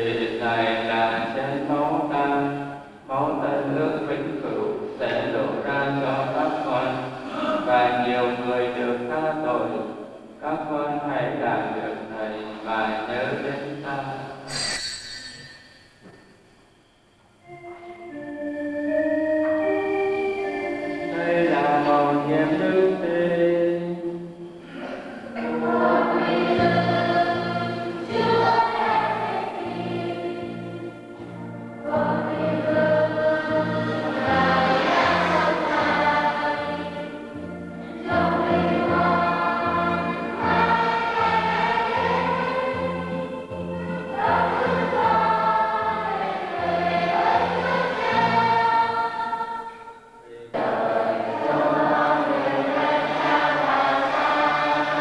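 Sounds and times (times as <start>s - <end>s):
choir singing a hymn: 0.0s - 14.6s, 17.4s - 55.0s
instrumental accompaniment low notes: 17.4s - 49.5s, 50.1s - 55.0s.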